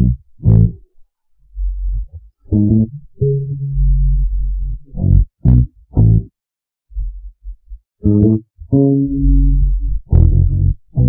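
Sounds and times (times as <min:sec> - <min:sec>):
low bass notes: 0:00.0 - 0:00.9, 0:01.5 - 0:06.3, 0:06.9 - 0:11.0.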